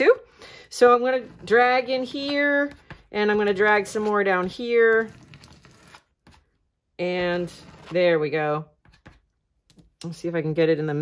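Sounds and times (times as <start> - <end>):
plastic card scraping paint on paper: 1.0 - 6.5, 7.2 - 8.2.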